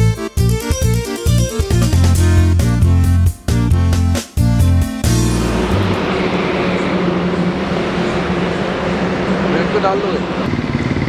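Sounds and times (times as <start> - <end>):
engine humming: 0.0 - 11.0
outdoor noise: 4.2 - 11.0.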